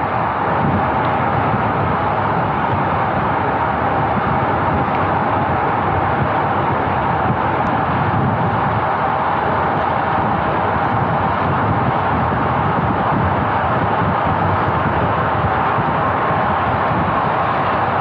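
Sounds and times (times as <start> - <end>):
road noise: 0.0 - 18.0
wind rushing on microphone: 0.0 - 18.0.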